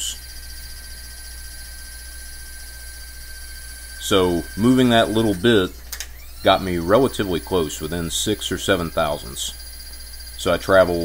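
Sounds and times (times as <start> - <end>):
milling machine power feed hum: 0.0 - 11.0.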